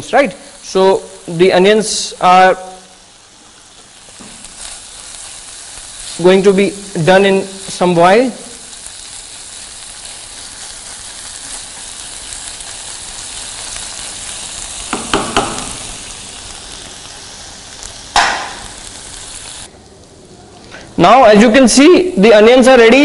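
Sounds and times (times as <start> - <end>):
onions sizzling in oil: 0.0 - 20.2.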